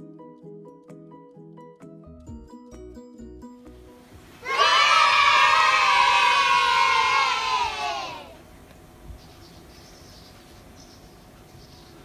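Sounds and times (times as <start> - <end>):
children cheering and shouting: 4.4 - 8.4.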